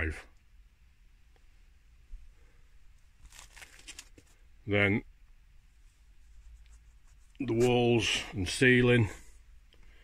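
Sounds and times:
light crackles: 0:02.9 - 0:04.5
rustling and crinkling handling noise: 0:02.9 - 0:04.6, 0:05.7 - 0:09.0.

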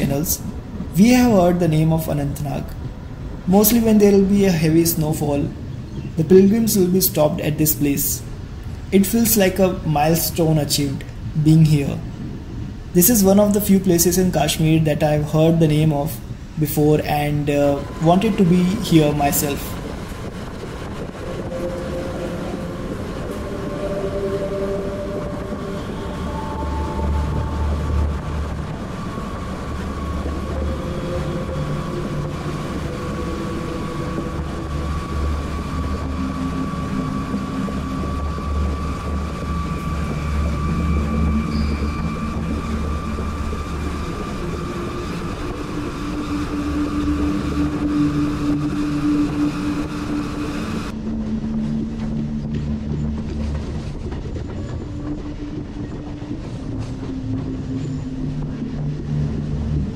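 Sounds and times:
deep low drone: 0:00.0 - 0:59.9
faint steady hum: 0:00.0 - 0:59.9
train wheels rumbling on rail: 0:00.0 - 0:59.9.

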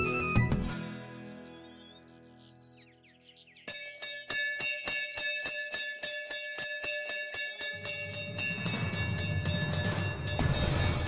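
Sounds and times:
background music: 0:00.0 - 0:04.6
brass bells ringing: 0:03.7 - 0:11.0
low rumbling swell: 0:07.9 - 0:11.0.

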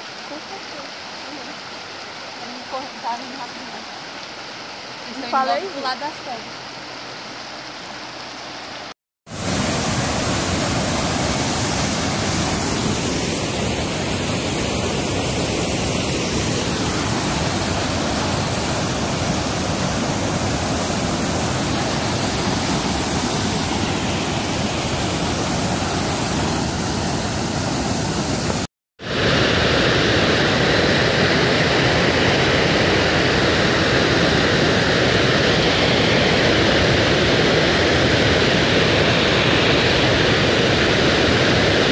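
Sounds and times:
waterfall rushing over rocks: 0:00.0 - 0:41.9.

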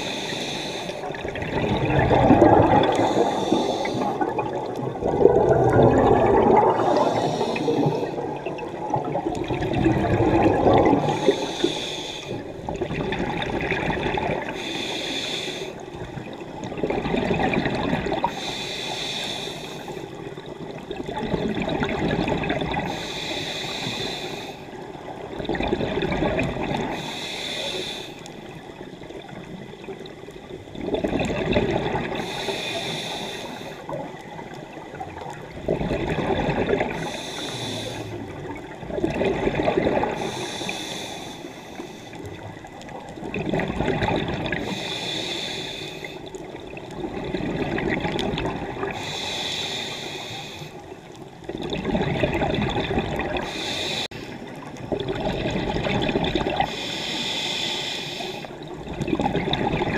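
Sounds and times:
regulator inhale hiss: 0:00.0 - 0:01.2, 0:02.9 - 0:04.3, 0:06.8 - 0:08.2, 0:11.1 - 0:12.5, 0:14.5 - 0:16.6, 0:18.2 - 0:20.8, 0:22.8 - 0:25.2, 0:26.8 - 0:28.6, 0:32.0 - 0:34.5, 0:36.9 - 0:38.5, 0:40.0 - 0:43.0, 0:44.6 - 0:46.5, 0:48.8 - 0:51.3, 0:53.4 - 0:54.7, 0:56.5 - 0:58.6
exhaust bubbles rushing: 0:01.1 - 0:03.2, 0:04.1 - 0:07.0, 0:07.8 - 0:11.3.

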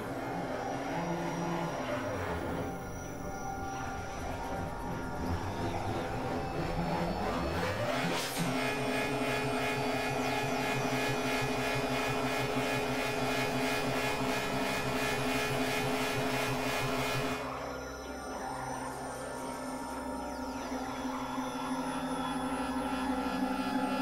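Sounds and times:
electronic synthesizer drone: 0:00.0 - 0:24.0.

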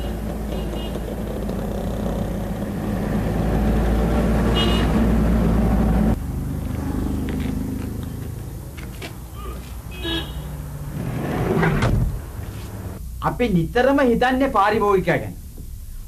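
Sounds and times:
van engine and tyres on road: 0:00.0 - 0:13.0
steady engine hum: 0:00.0 - 0:13.2.

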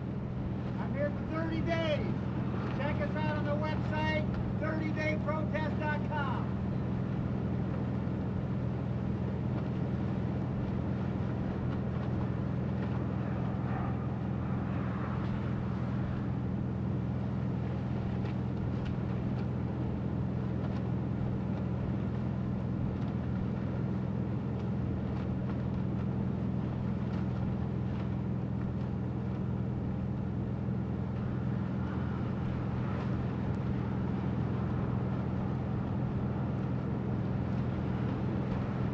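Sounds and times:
low mechanical hum: 0:00.0 - 0:38.9.

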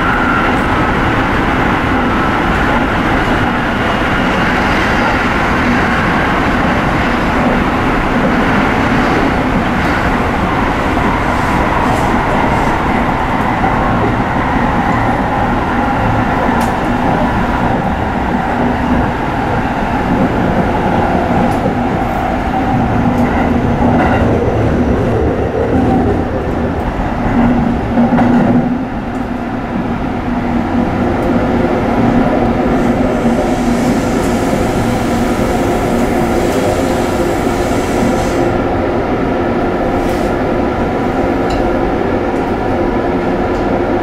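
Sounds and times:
steady train hum: 0:00.0 - 0:44.0
train wheels rumbling on rail: 0:00.0 - 0:44.0.

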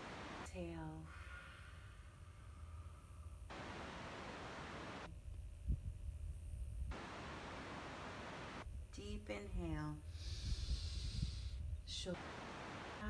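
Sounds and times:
soft hiss: 0:00.0 - 0:13.0
wind rumble on microphone: 0:03.4 - 0:13.0.

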